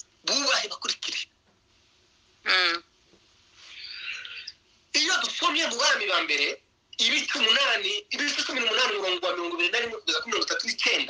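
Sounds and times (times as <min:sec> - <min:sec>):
soft breathy hiss: 0:01.1 - 0:05.1.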